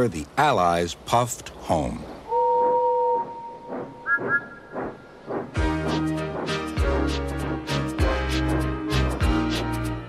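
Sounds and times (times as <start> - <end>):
low train whistle: 2.3 - 4.6
steam locomotive chuffing: 3.3 - 9.0.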